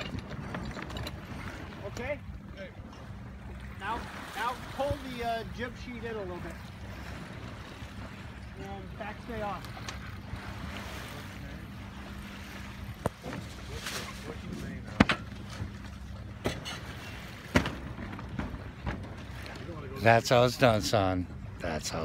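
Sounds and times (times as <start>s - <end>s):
water and wind wash: 0.0s - 22.0s
sharp knocks: 17.5s - 19.0s.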